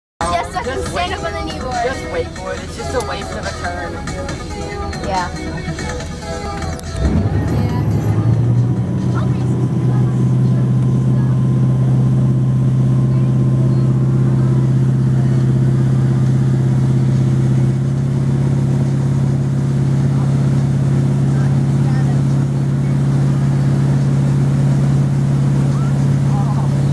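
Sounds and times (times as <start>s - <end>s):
motorboat engine droning: 0.2s - 26.9s.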